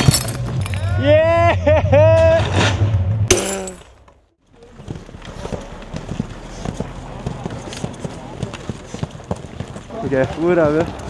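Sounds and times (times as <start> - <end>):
footsteps on pavement: 4.5 - 11.0.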